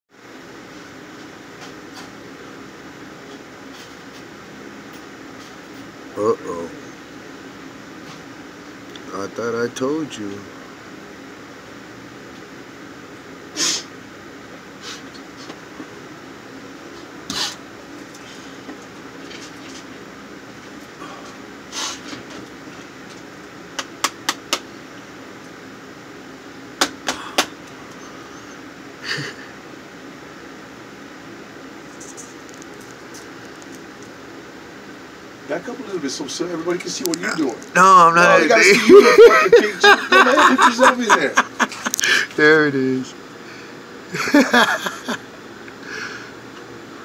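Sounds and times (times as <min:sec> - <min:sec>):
ventilation hum: 0:00.1 - 0:47.0
short hissing bursts: 0:13.5 - 0:13.9.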